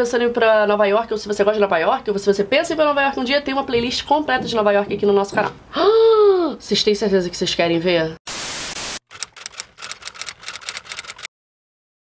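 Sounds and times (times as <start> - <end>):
static hiss: 8.3 - 9.0
irregular crackling clicks: 9.1 - 11.3.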